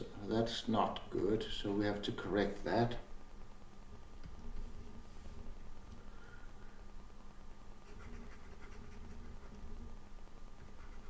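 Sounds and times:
pen stylus scratching on tablet: 7.8 - 9.8, 10.6 - 11.0.

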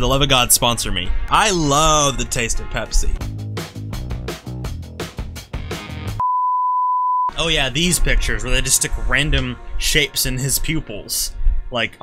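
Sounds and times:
music: 0.0 - 6.3, 7.3 - 12.0
high censor beep: 6.2 - 7.3.

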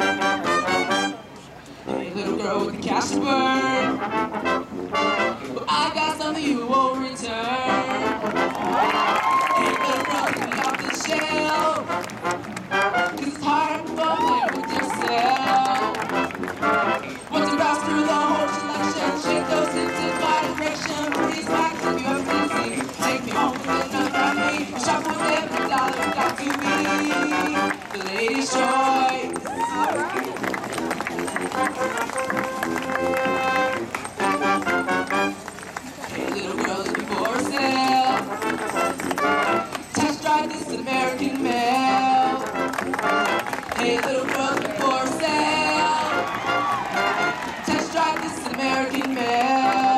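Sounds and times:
brass chords: 0.0 - 49.9
amplified singing voice: 1.9 - 4.1, 5.5 - 8.5, 9.4 - 12.0, 13.0 - 16.4, 17.1 - 29.9, 33.1 - 35.1, 36.1 - 49.9
marching percussion: 8.1 - 49.9.

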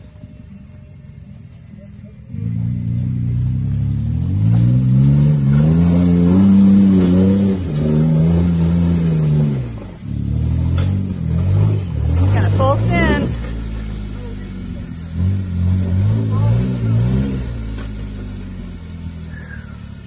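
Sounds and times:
engine revving: 0.0 - 20.0.

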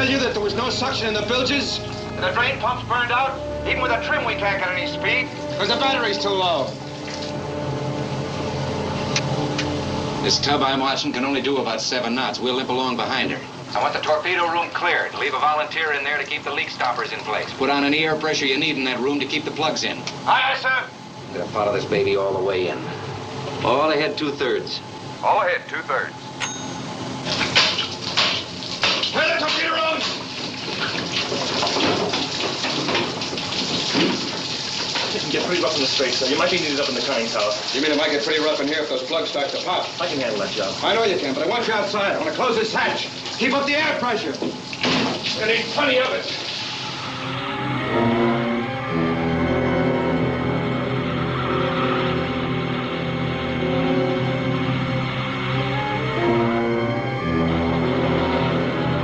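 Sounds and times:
low drone of held pitches: 0.0 - 11.4, 46.9 - 59.0
water spraying and rushing: 5.2 - 7.5, 27.3 - 47.1.

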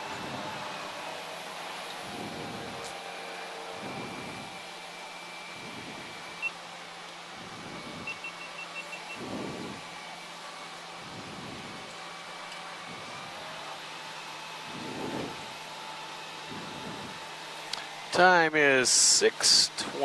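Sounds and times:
turboprop engine hum: 0.0 - 20.0
short electronic beeps: 7.9 - 9.3.

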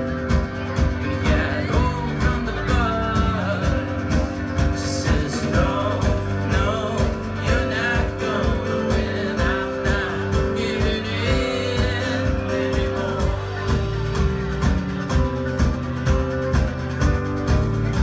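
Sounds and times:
acoustic guitar: 0.0 - 18.0
banjo: 0.0 - 18.0
drum kit beat: 0.0 - 18.0.

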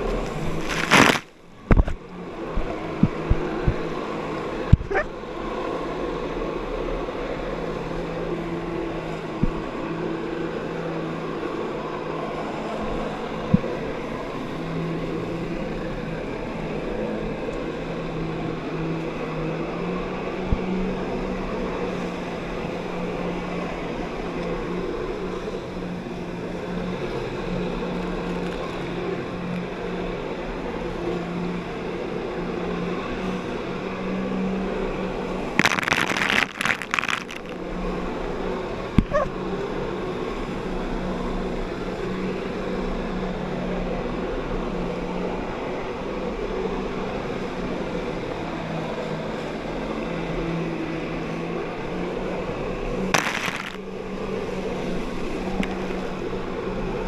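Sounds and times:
water splashing onto microphone: 0.2 - 2.0, 35.6 - 37.6, 53.2 - 53.8
churning water rushing: 35.6 - 37.6.

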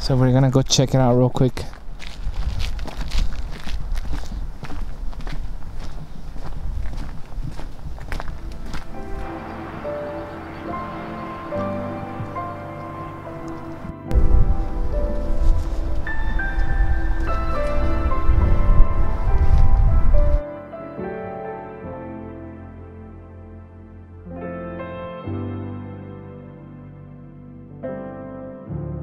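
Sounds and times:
footsteps on dirt trail: 1.5 - 11.1, 12.0 - 20.4
loud low rumble: 8.0 - 20.4
background music held notes: 8.1 - 29.0.

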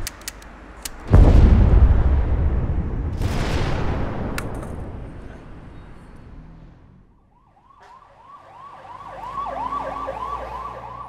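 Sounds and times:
siren wailing: 7.2 - 11.0.

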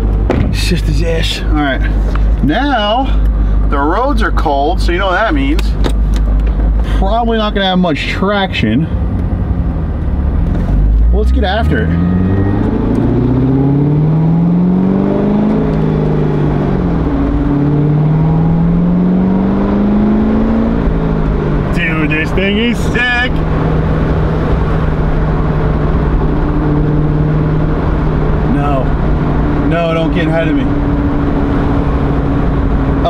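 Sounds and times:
car engine accelerating from inside cabin: 6.4 - 33.0.

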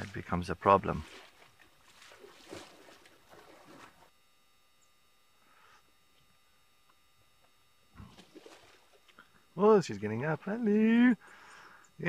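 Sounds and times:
sloshing and squelching in mud: 0.0 - 4.1, 8.0 - 9.2.

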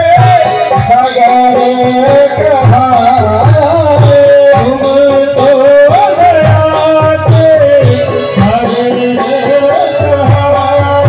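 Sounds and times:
devotional music over loudspeakers: 0.0 - 11.0
hand drum beats: 0.0 - 11.0.

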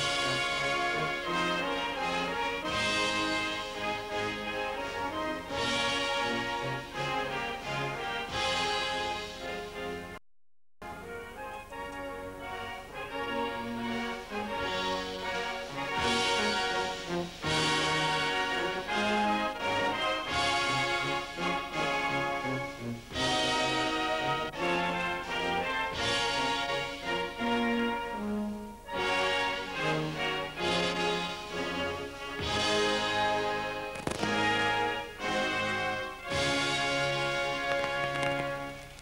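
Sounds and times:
orchestral music with brass: 0.0 - 10.2, 10.8 - 39.0.

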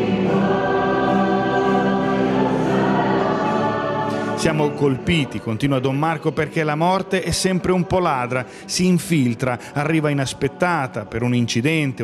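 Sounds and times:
choir singing a slow hymn: 0.0 - 12.0.

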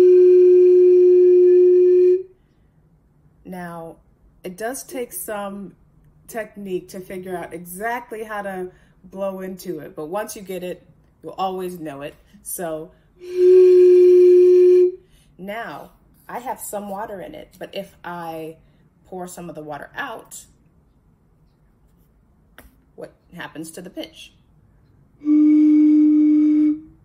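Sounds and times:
blowing across bottle mouth: 13.2 - 15.0, 25.2 - 26.9.

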